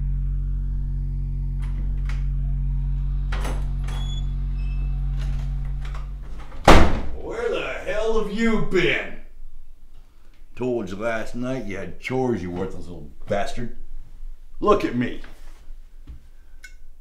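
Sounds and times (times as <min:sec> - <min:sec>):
low steady drone: 0:00.0 - 0:14.6
wooden door slamming: 0:05.8 - 0:07.2.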